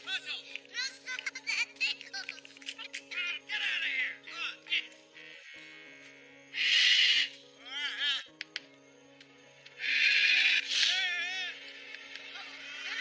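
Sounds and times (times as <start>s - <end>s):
film music with held chords: 0.0s - 13.0s
animal-like cry: 6.5s - 8.3s, 9.8s - 11.1s.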